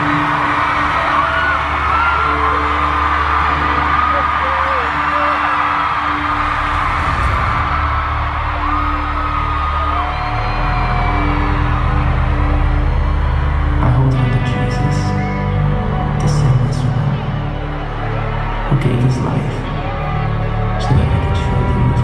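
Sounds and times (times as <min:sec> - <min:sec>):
fans screaming and whooping: 0:00.0 - 0:22.0
slow music over sound system: 0:00.0 - 0:22.0.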